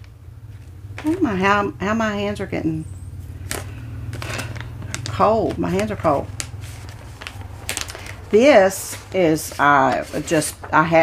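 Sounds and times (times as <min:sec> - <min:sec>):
steady low hum: 0:00.0 - 0:11.0
paper packets clicking and rustling: 0:03.4 - 0:11.0.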